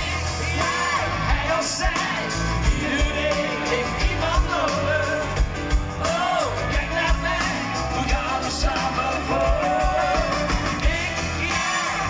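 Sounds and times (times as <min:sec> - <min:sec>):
live pop-rock band: 0:00.0 - 0:12.0
man singing: 0:00.0 - 0:12.0
steady drum beat: 0:00.0 - 0:12.0.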